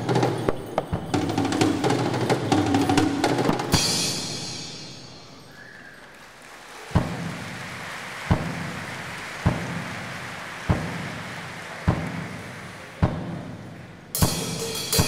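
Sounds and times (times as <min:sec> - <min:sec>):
frame drum beats: 0:00.0 - 0:05.5, 0:06.8 - 0:15.0.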